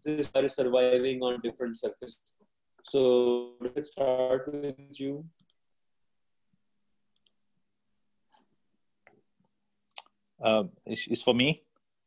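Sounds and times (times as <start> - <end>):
faint clicks: 7.1 - 7.4.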